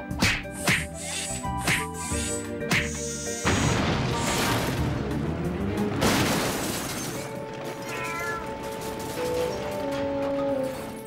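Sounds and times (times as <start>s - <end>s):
cartoon cat meow: 7.8s - 8.5s.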